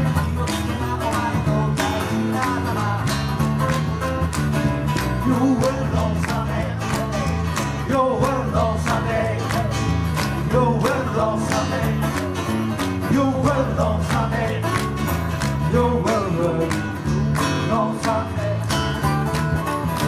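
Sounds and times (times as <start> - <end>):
acoustic guitars strummed: 0.0 - 20.0
electric bass line: 0.0 - 20.0.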